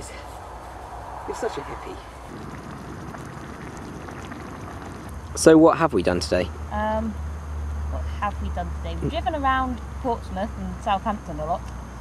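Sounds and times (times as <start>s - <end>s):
stew bubbling: 1.3s - 6.3s, 9.0s - 9.2s.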